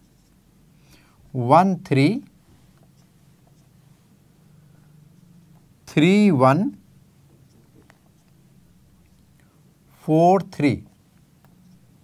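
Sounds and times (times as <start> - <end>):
marker pen on whiteboard: 0.0 - 0.4, 1.3 - 12.0
low room hum: 0.0 - 12.0.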